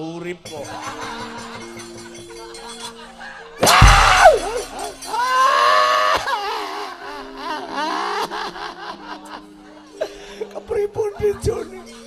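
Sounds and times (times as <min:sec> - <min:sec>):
gamelan ringing tones: 0:00.5 - 0:05.4
person crying out: 0:03.6 - 0:08.4.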